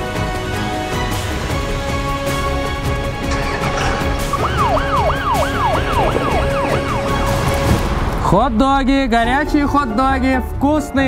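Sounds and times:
background music: 0.0 - 11.0
fire engine siren yelping: 3.2 - 7.9.

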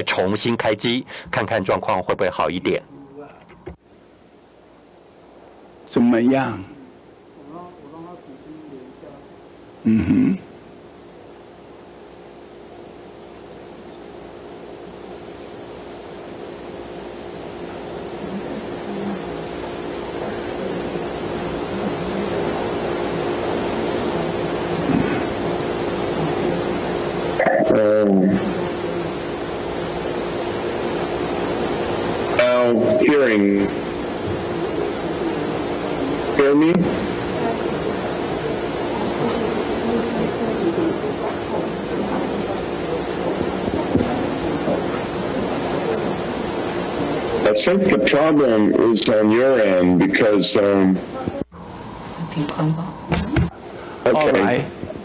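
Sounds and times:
faint hum: 0.0 - 55.0
steady hiss: 0.0 - 55.0
garbled warbling voice: 47.4 - 49.1.

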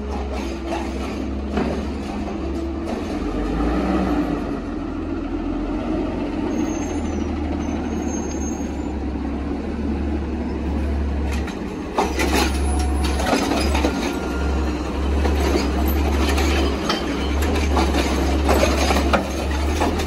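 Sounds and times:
garbage truck engine running: 0.0 - 20.0
high brake squeaks: 6.5 - 9.0.

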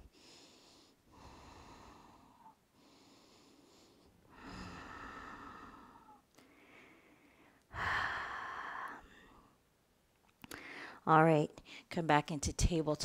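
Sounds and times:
slow deep breathing: 0.0 - 9.6.

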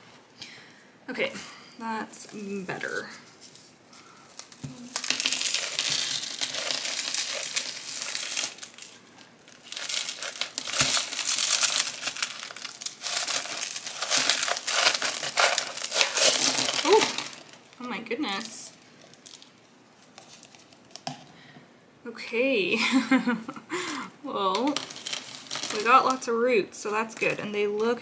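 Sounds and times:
plastic pot crinkling: 2.1 - 21.1, 24.5 - 26.3, 26.9 - 28.0
potting mix spilling on plastic: 4.4 - 17.6, 24.6 - 26.3.

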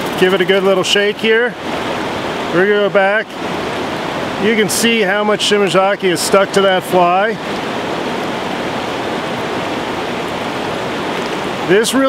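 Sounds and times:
river rushing over rocks: 0.0 - 12.0.

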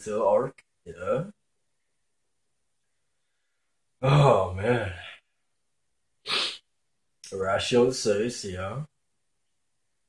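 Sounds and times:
man's sharp burst of breath: 6.3 - 6.6.

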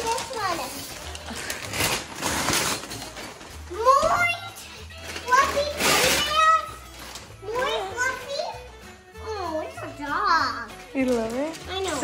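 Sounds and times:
child's voice: 0.0 - 0.9, 3.7 - 6.8, 7.4 - 10.8
wrapping paper rustling and tearing: 0.0 - 8.2, 10.7 - 12.0.

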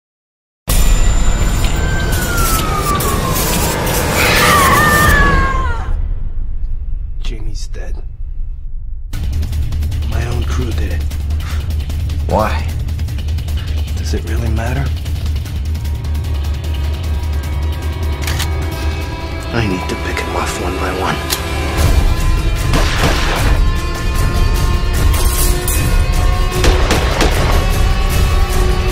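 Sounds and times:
heavy low rumble: 5.7 - 23.2.

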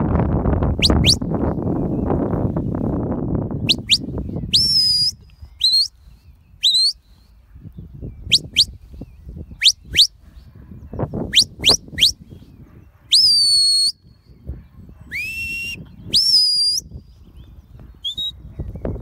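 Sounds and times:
shepherd's whistle commands: 0.8 - 1.3, 3.6 - 6.0, 6.6 - 7.1, 8.2 - 8.8, 9.5 - 10.2, 11.2 - 12.3, 13.1 - 14.0, 15.1 - 16.9, 18.0 - 18.4.

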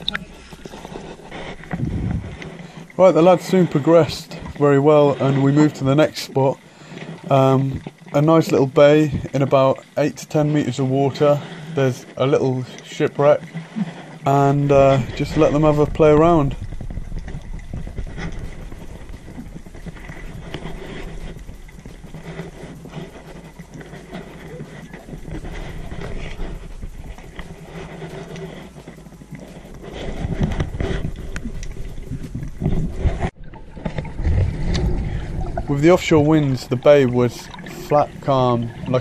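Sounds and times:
faint crackling clicks: 0.0 - 4.6, 11.5 - 39.0
rumbling: 0.0 - 6.0, 13.6 - 39.0
low underwater hum: 0.0 - 39.0.

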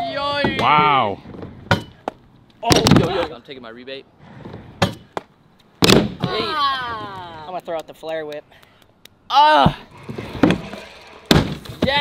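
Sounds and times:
scooter slapping ramp: 9.9 - 12.0.

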